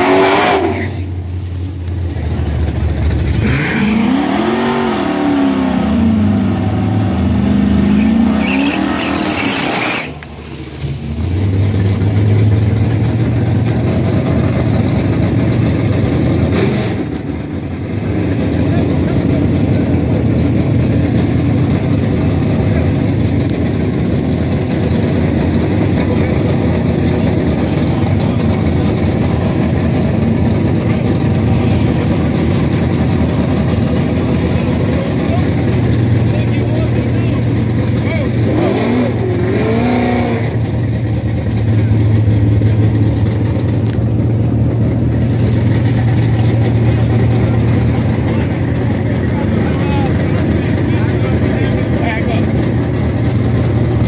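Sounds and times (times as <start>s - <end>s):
car engine revving: 0.0s - 1.3s, 2.1s - 54.0s
car engine idling: 1.0s - 3.4s, 5.4s - 39.4s, 40.5s - 54.0s.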